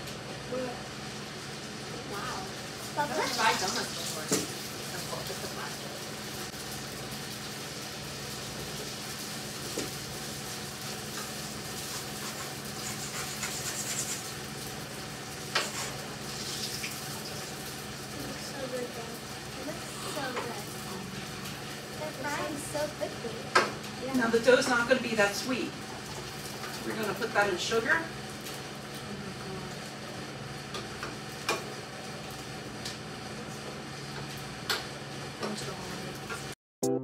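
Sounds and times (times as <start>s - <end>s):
dough sizzling in hot oil: 0.0s - 36.5s.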